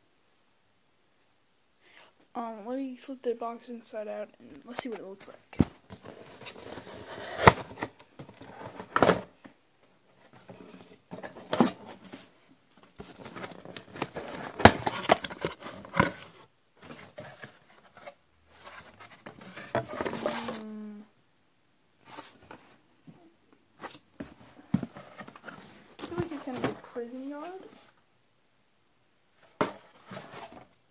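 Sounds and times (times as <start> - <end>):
cardboard rustling and tearing: 5.9 - 9.4, 12.9 - 20.7, 24.8 - 27.8
clicks and scrapes: 12.8 - 20.7.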